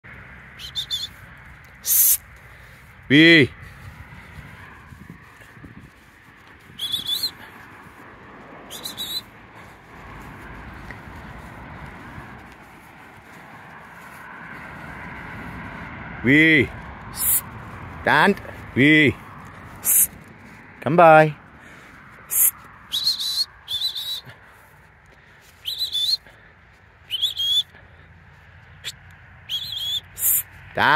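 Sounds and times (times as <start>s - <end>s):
high pitch-bending whistle blasts: 0.6s - 1.2s, 6.8s - 7.4s, 8.7s - 9.3s, 22.9s - 24.3s, 29.5s - 30.2s.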